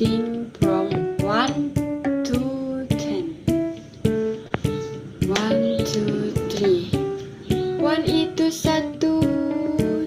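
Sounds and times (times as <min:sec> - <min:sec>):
woman singing: 0:00.0 - 0:03.4, 0:05.2 - 0:10.0
plucked strings accompaniment: 0:00.0 - 0:10.0.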